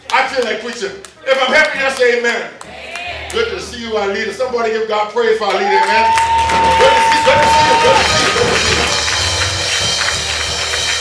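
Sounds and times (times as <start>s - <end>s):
church band music: 1.3s - 11.0s
percussion: 5.5s - 11.0s
low bass: 6.3s - 11.0s.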